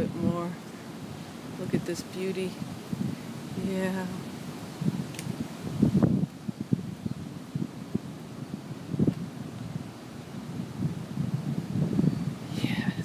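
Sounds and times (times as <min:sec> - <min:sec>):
wind blowing on microphone: 0:00.0 - 0:13.0.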